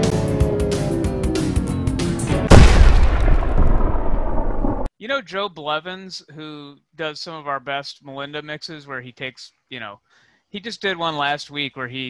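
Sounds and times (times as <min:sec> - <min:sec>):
explosion rumble: 0:02.4 - 0:04.9.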